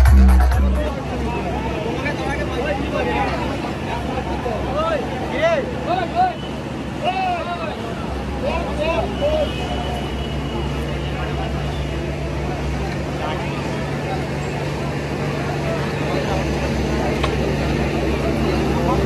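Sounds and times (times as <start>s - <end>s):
engine droning: 0.0s - 19.0s
people talking: 0.0s - 19.0s.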